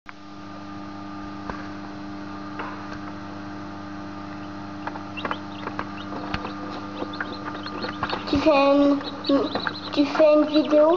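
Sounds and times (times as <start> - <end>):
incubator humming: 0.1 - 10.9
chicks peeping: 4.2 - 10.9.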